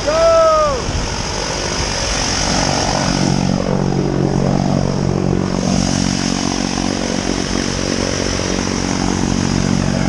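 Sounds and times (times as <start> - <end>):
propeller drone: 0.0 - 10.0.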